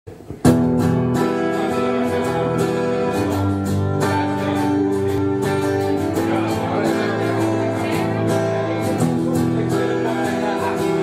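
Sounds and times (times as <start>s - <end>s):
strummed guitar chords: 0.1s - 11.0s
pop song instrumental: 0.4s - 11.0s.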